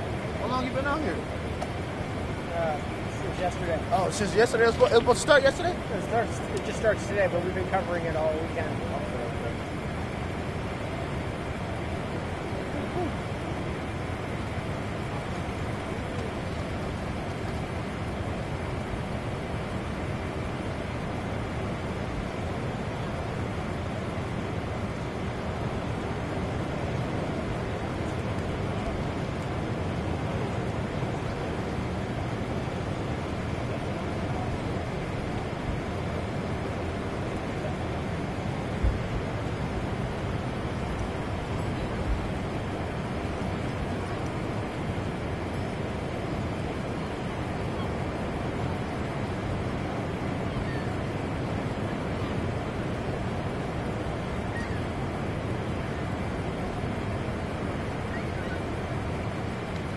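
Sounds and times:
waterfall roaring: 0.0s - 59.9s.

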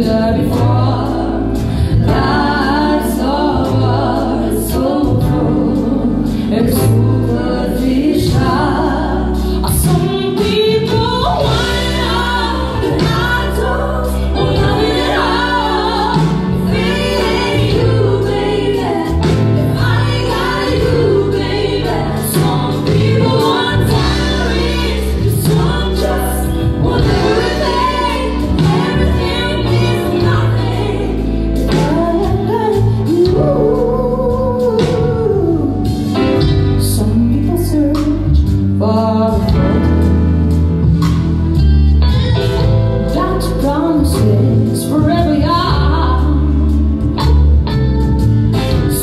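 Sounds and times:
women singing backing vocals: 0.0s - 39.9s
bass guitar: 0.0s - 49.0s
drums: 0.0s - 49.0s
keyboard: 0.0s - 49.0s
woman singing lead: 0.0s - 49.0s.

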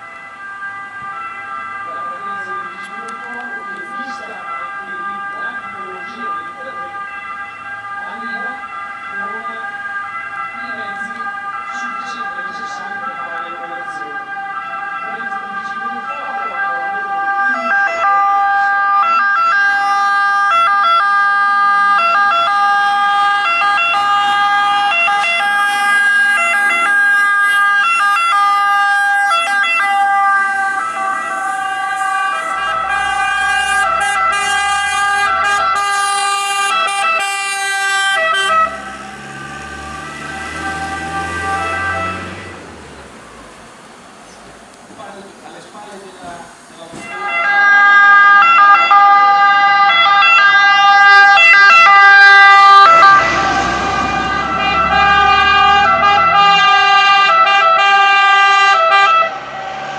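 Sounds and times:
fire engine siren: 0.0s - 44.1s, 46.8s - 59.9s
truck engine rumble: 0.0s - 59.9s.

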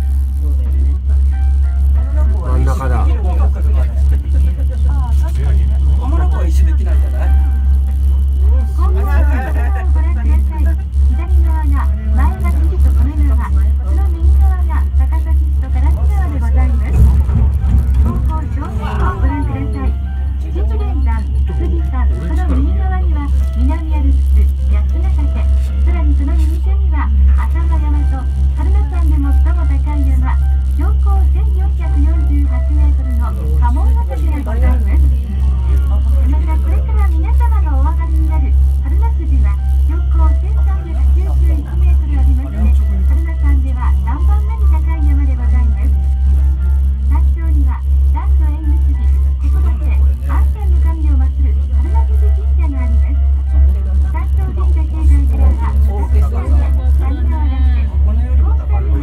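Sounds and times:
cable car cabin rumble: 0.0s - 59.0s
people talking: 0.0s - 59.0s.

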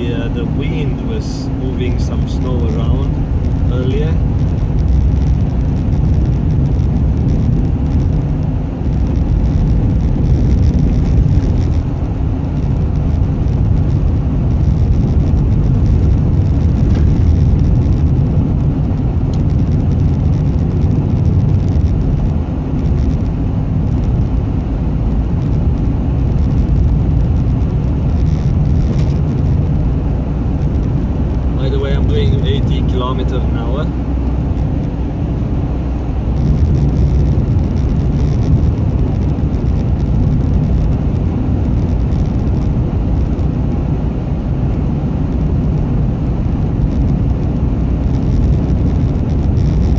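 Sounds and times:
road and engine rumble in car: 0.0s - 49.9s
tyres on icy snowy road: 0.0s - 49.9s.

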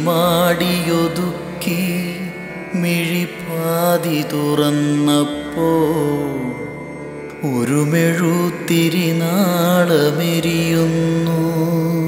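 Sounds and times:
man singing slow song: 0.0s - 12.0s.

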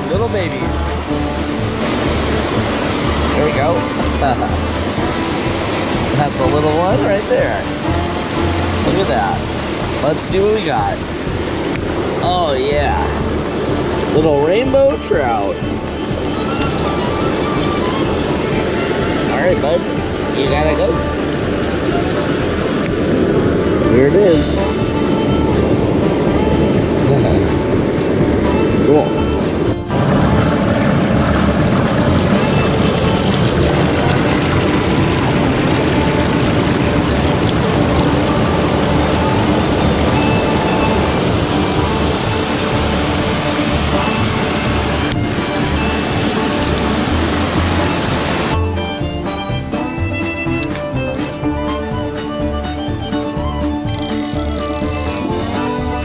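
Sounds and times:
background music: 0.0s - 56.0s
water rushing over rocks: 0.0s - 56.0s.

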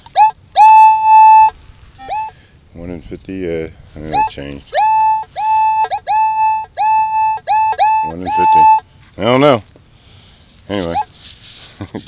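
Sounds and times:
metal detector beeps: 0.1s - 2.4s, 4.1s - 8.8s.

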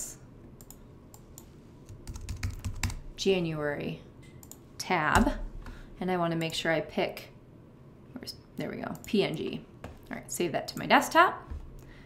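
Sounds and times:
keyboard typing: 1.9s - 3.0s.

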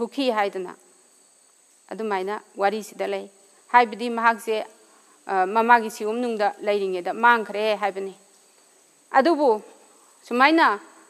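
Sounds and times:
woman lecturing: 0.0s - 0.8s, 1.9s - 4.7s, 5.3s - 8.2s, 9.1s - 9.6s, 10.3s - 10.9s
faint high-pitched whine: 0.0s - 11.0s.

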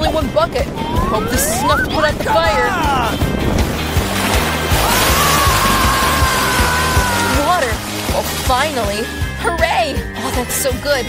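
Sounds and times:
long high cry: 5.1s - 7.4s.

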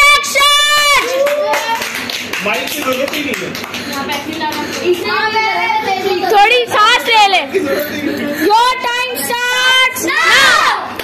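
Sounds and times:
people clapping: 0.9s - 5.4s.

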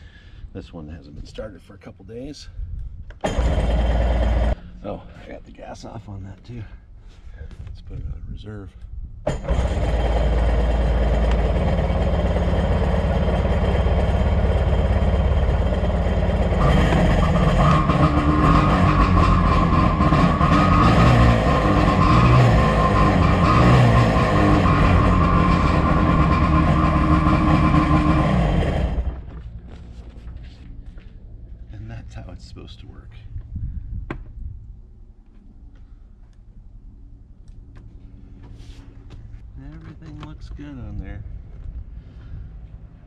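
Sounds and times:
jet ski engine running: 3.2s - 4.6s, 9.3s - 29.6s.

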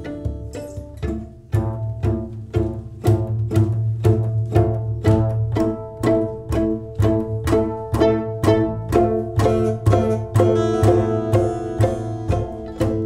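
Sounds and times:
bowed violin: 0.0s - 13.0s
plucked double bass: 0.0s - 13.0s
acoustic guitar strummed chords: 9.5s - 13.0s.

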